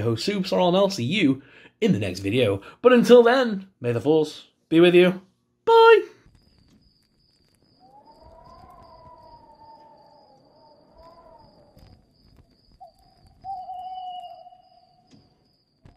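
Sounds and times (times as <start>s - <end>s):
high pulsing chirp: 6.2s - 15.9s
eerie wailing tone: 7.5s - 15.5s.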